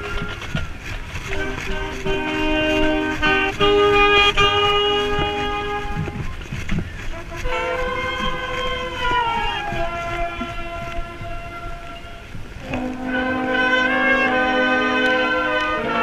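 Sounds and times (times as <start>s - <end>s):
marching band brass chords: 0.0s - 16.0s.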